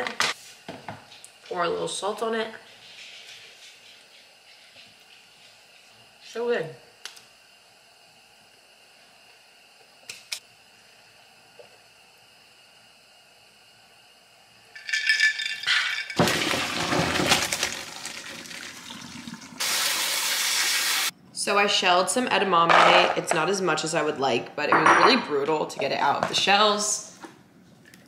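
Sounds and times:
water splashing into steel sink: 0:16.2 - 0:20.4
sprayer water rushing: 0:17.9 - 0:21.1.

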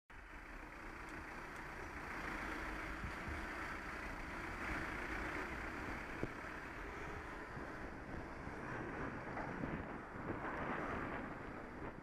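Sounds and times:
car driving slowly: 0:00.1 - 0:12.0
wind rushing on microphone: 0:05.7 - 0:12.0.

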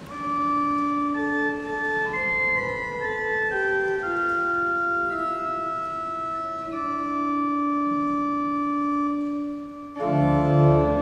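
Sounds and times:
pipe organ chord: 0:00.0 - 0:11.0.

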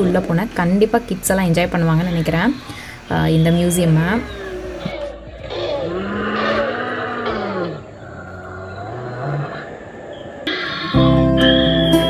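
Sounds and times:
recorded dinosaur roar: 0:04.0 - 0:11.0.

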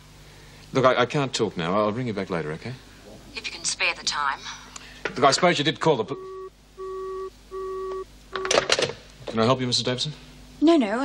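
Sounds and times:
telephone busy tone beeping: 0:06.1 - 0:08.6.

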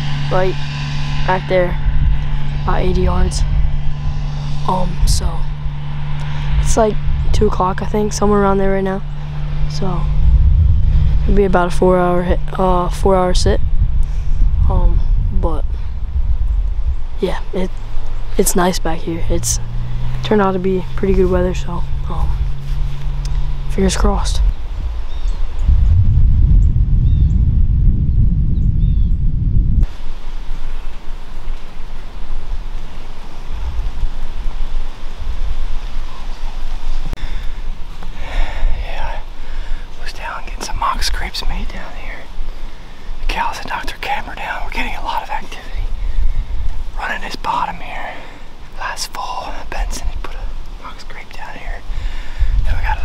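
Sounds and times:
wind buffeting microphone: 0:00.0 - 0:53.0
person whispering: 0:20.6 - 0:22.5, 0:38.2 - 0:42.3, 0:43.2 - 0:46.0, 0:46.9 - 0:51.9, 0:52.6 - 0:53.0
outdoor air hiss: 0:29.8 - 0:53.0.

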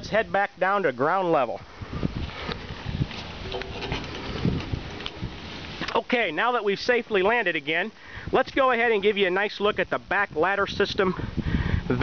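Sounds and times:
low microphone rumble: 0:01.6 - 0:06.3
steps on metal ladder: 0:02.5 - 0:06.0.

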